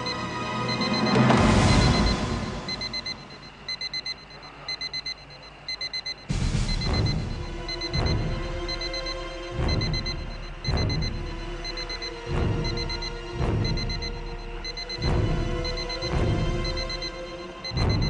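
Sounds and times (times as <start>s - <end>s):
tense music with booming hits: 0.0s - 3.5s, 6.3s - 18.0s
electronic alarm beeping: 0.0s - 18.0s.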